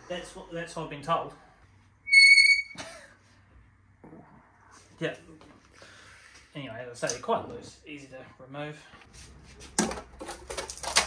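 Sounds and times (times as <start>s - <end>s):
metal on metal squeak: 2.1s - 2.8s.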